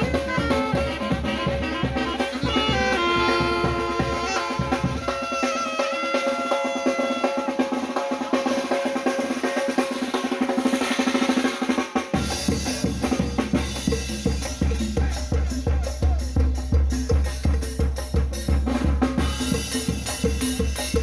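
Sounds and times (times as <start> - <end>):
saxophones playing melody: 0.0 - 7.8
bass drum and cymbal beats: 0.0 - 21.0
quick drumming: 0.0 - 21.0.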